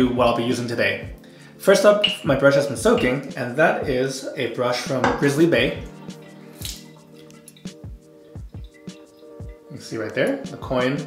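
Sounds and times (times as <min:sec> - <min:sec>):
quiet background music: 0:00.0 - 0:11.0
water dripping off shaving brush: 0:05.2 - 0:11.0.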